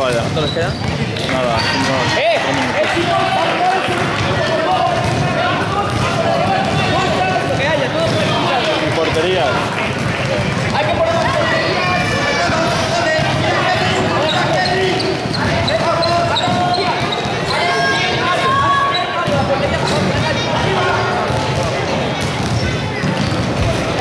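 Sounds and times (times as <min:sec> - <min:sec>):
basketball bouncing on court: 0:00.0 - 0:01.3, 0:03.8 - 0:17.5, 0:19.2 - 0:24.0
children and spectators shouting: 0:10.7 - 0:19.4, 0:20.1 - 0:24.0.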